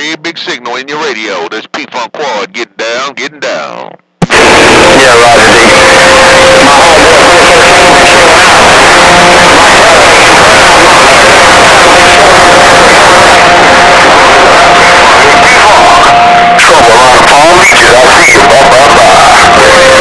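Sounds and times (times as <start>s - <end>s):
faint overlapping radio voices: 0.0s - 20.0s
radio static: 0.0s - 20.0s.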